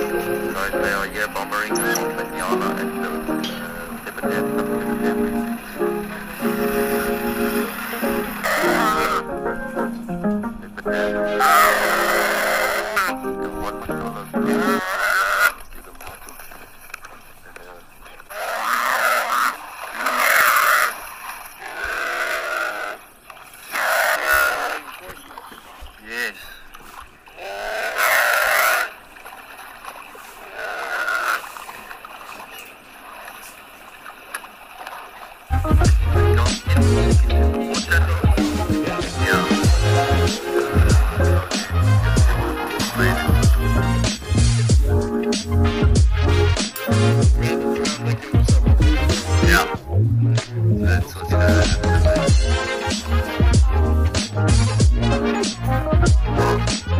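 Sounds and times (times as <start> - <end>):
guitar background music: 0.0 - 14.8, 35.5 - 56.9.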